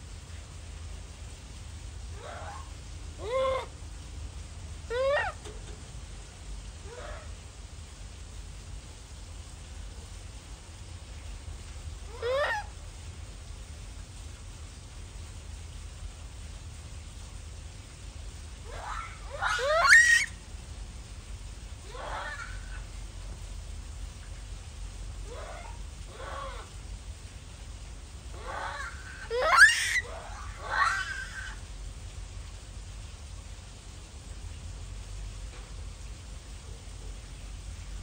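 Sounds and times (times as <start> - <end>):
monkey calls: 2.2 - 3.8, 4.9 - 5.5, 6.9 - 7.4, 12.1 - 12.7, 18.6 - 20.4, 21.8 - 22.9, 25.2 - 26.8, 28.3 - 31.7.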